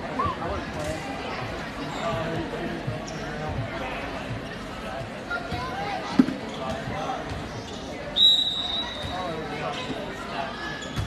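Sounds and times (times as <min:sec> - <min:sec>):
spectators chatting: 0:00.0 - 0:11.0.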